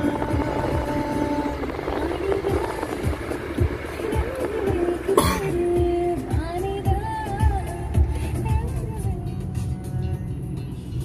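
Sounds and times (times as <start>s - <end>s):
background music: 0.0s - 11.0s
car cabin road and engine rumble: 0.0s - 11.0s.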